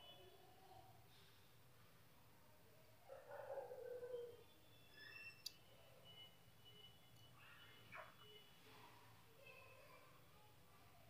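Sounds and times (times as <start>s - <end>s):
faint distant sounds: 0.0s - 11.0s.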